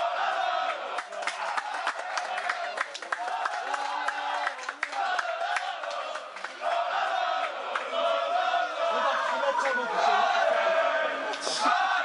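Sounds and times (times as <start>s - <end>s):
men chanting and shouting: 3.3s - 12.0s.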